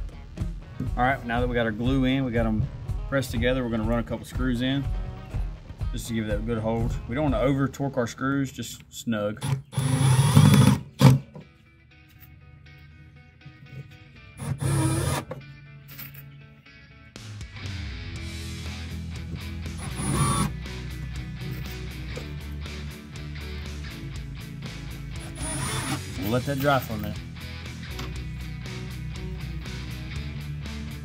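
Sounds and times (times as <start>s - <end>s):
background music: 0.0s - 8.8s, 9.4s - 31.0s
cordless drill driving screws: 9.4s - 11.2s, 14.4s - 15.4s, 19.8s - 20.6s, 25.2s - 26.3s.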